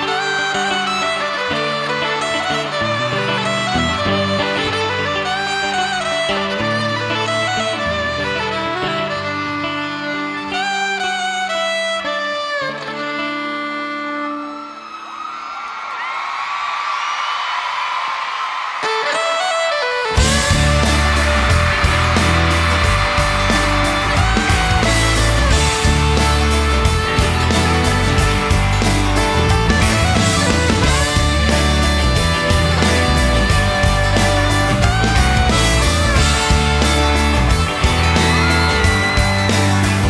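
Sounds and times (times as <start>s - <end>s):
crowd cheering and screaming: 0.0s - 11.1s, 12.7s - 40.0s
fiddle melody: 0.0s - 15.2s, 18.8s - 40.0s
live country-pop band: 0.0s - 15.6s, 18.8s - 40.0s
drums: 18.0s - 40.0s.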